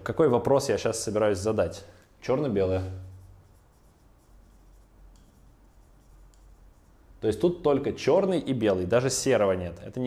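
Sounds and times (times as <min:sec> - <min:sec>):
marker writing on whiteboard: 0:03.0 - 0:07.0.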